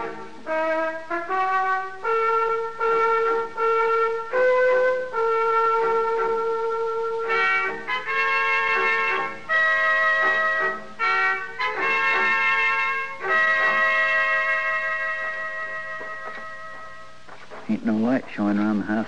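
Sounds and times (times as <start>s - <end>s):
dramatic brass music: 0.0s - 17.2s.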